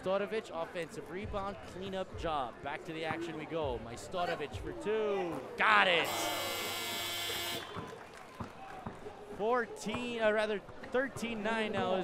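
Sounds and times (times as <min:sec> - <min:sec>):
electronic buzzer tone: 0:06.1 - 0:07.7.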